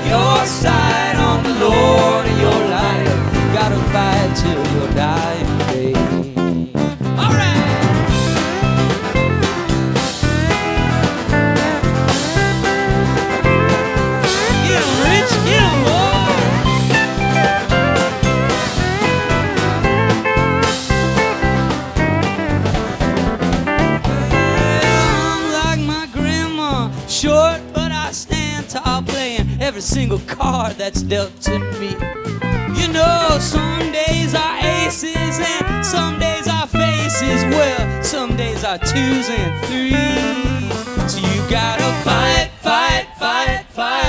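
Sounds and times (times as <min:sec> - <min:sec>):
electric guitar: 0:00.0 - 0:28.0, 0:31.5 - 0:42.4
bending guitar lead line: 0:00.0 - 0:29.1, 0:30.4 - 0:42.6
strummed acoustic guitar: 0:00.0 - 0:42.4
bass guitar: 0:00.0 - 0:43.2
drums: 0:00.0 - 0:44.0.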